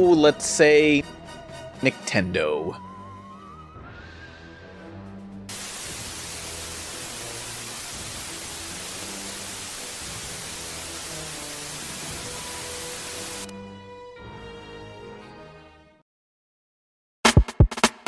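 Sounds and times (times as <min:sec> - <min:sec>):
television static hiss: 0:05.5 - 0:13.5.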